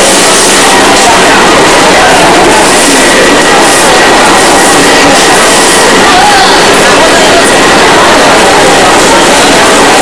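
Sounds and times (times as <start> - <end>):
busy market din: 0.0 - 10.0.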